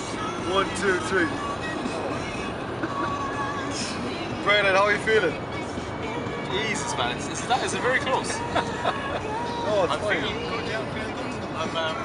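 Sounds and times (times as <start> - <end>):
faint music: 0.0 - 12.0
road and engine noise in car: 0.0 - 12.0.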